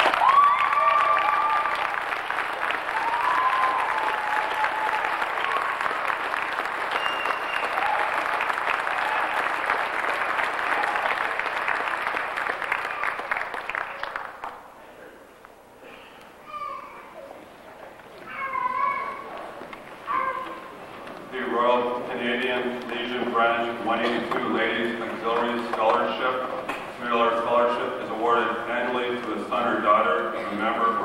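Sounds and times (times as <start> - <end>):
audience applauding: 0.0 - 14.8.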